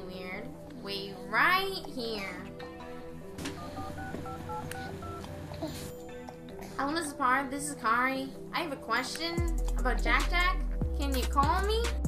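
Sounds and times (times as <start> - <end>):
soft background music: 0.0 - 12.0
telephone keypad two-tone beeps: 3.6 - 5.2.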